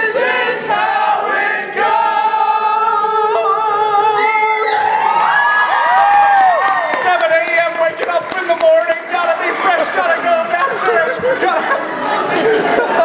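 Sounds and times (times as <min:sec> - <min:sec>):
audience singing along: 0:00.0 - 0:04.2
men singing unaccompanied: 0:00.0 - 0:04.8.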